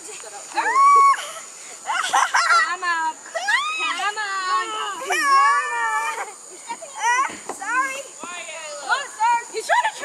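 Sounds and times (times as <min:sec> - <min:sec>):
children yelling: 0:00.6 - 0:08.1.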